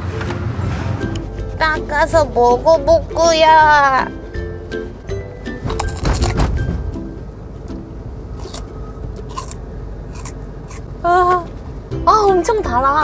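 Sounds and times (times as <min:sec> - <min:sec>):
background music: 0:00.0 - 0:10.9, 0:11.8 - 0:13.0
crunchy fruit being chewed: 0:05.7 - 0:06.4, 0:08.4 - 0:10.9.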